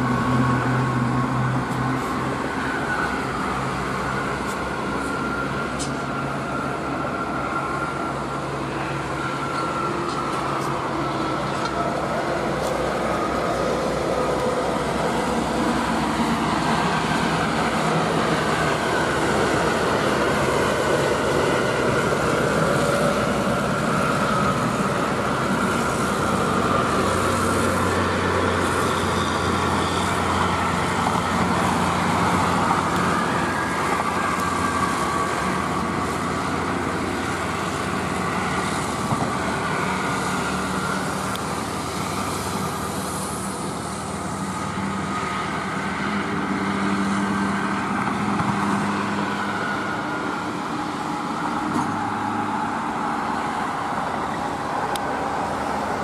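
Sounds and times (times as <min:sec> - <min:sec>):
diesel engines droning: 0:00.0 - 0:56.0.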